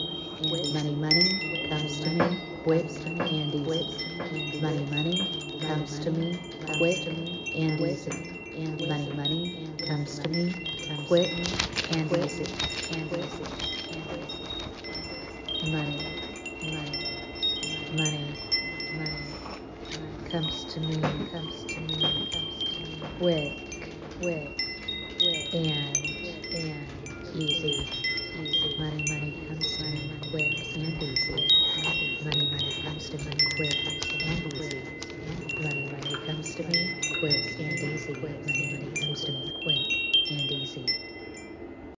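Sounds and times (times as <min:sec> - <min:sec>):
low hum pulses: 0:00.0 - 0:42.0
low wavering tone: 0:00.0 - 0:42.0
wind chimes ringing: 0:00.0 - 0:42.0.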